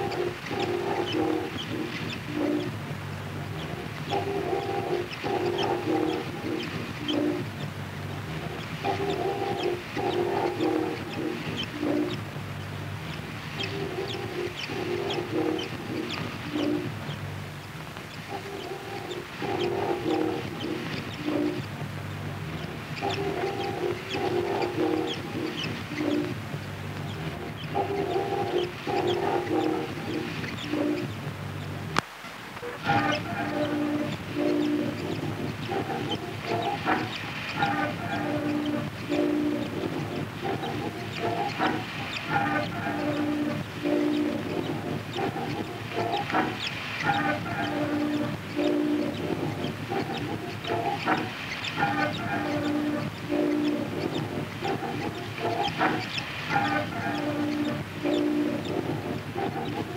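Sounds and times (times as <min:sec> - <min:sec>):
stuttering tones with high chirps: 0:00.0 - 0:32.0, 0:32.6 - 0:59.9.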